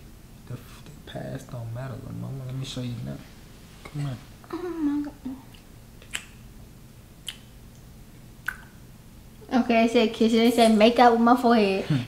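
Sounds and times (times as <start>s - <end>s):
wet kiss smacks: 5.5s - 6.4s, 7.2s - 7.5s, 8.4s - 8.8s.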